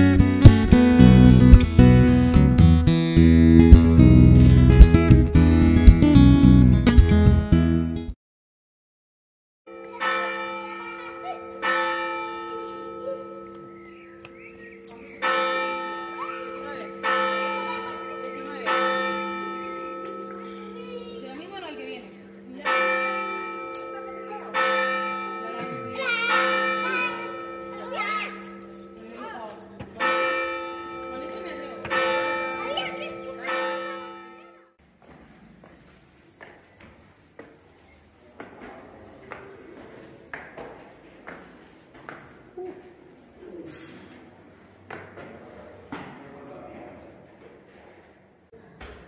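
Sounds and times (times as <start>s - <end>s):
church bell ringing: 9.7s - 34.8s.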